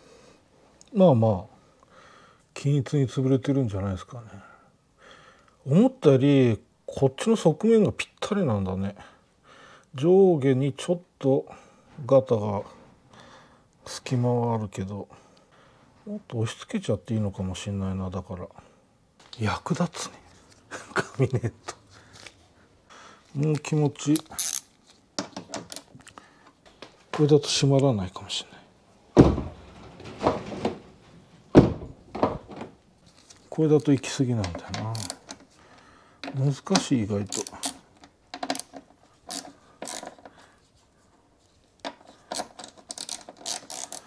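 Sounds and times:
handling rustle: 0:33.0 - 0:35.6
ratchet driver clicking: 0:38.4 - 0:40.1, 0:42.3 - 0:44.0.

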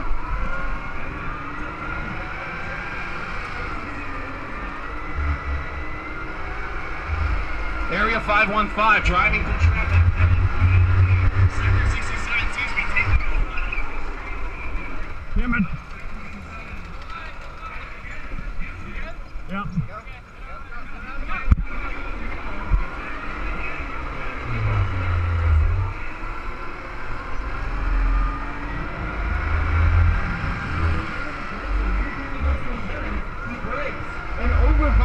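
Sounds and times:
electric kart motor and wheels: 0:00.0 - 0:35.0
deep rumbles: 0:04.8 - 0:17.9, 0:22.5 - 0:33.6.

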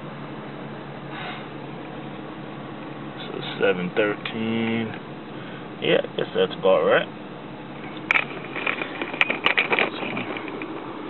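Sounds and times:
truck engine idling: 0:00.0 - 0:11.0
handling clicks and rustles: 0:07.8 - 0:11.0.

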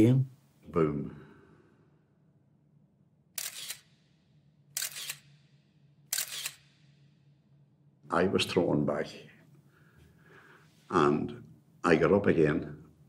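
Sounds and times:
camera shutter clicks: 0:03.4 - 0:04.0, 0:04.7 - 0:05.5, 0:06.1 - 0:07.0.

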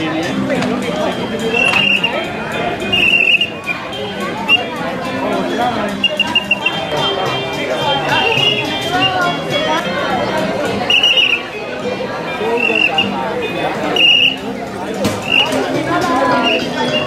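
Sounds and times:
crowd chatter: 0:00.0 - 0:17.0
high mouth whistle toots: 0:01.1 - 0:04.8, 0:05.9 - 0:09.4, 0:10.8 - 0:11.6, 0:12.3 - 0:14.5, 0:15.2 - 0:15.7, 0:16.3 - 0:17.0.

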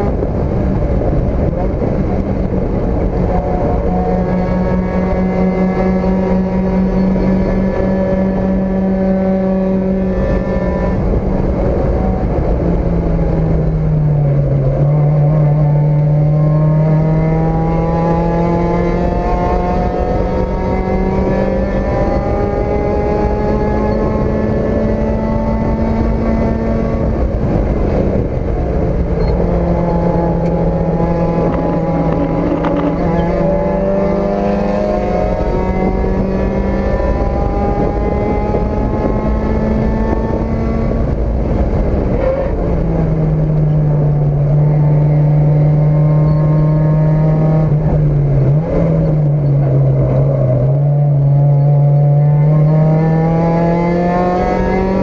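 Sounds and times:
race car engine at high revs: 0:00.0 - 0:55.0.

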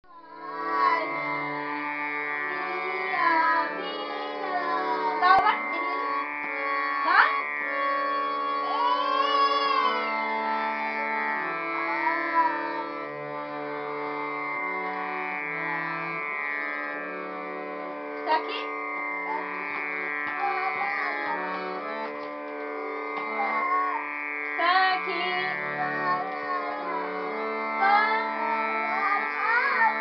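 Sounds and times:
harmonium playing: 0:00.1 - 0:30.0
person singing: 0:02.5 - 0:06.4, 0:08.0 - 0:13.0, 0:20.3 - 0:22.1, 0:23.3 - 0:30.0.

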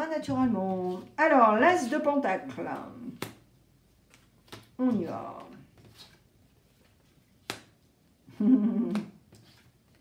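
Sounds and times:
woman vocal sound: 0:08.3 - 0:09.2.

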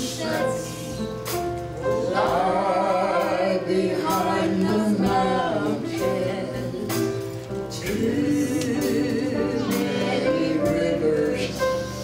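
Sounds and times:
man and woman singing gospel: 0:01.9 - 0:12.0.

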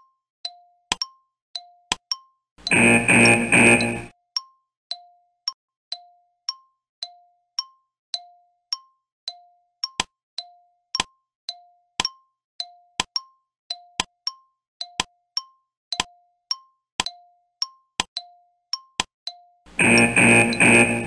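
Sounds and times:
alternating timer pips: 0:02.6 - 0:04.1, 0:19.7 - 0:21.0.

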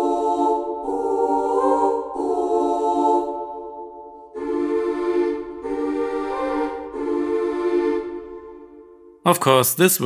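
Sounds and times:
boys' choir singing sustained chords: 0:00.0 - 0:09.6.

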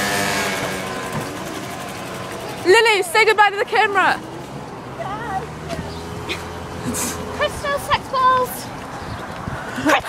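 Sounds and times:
motor scooter engine passing: 0:00.0 - 0:09.9.

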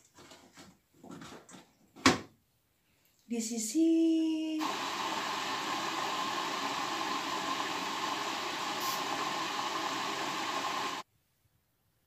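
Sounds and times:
washing machine running: 0:04.6 - 0:11.0.

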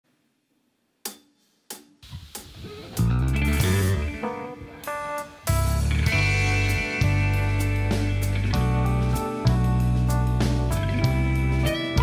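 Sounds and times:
rock band playing: 0:02.6 - 0:12.0.

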